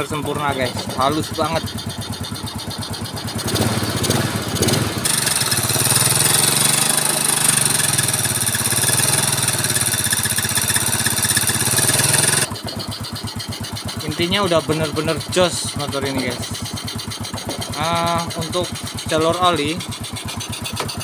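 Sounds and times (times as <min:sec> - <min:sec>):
rough engine idle with hiss: 0:00.0 - 0:21.0
scooter engine idling: 0:00.0 - 0:21.0.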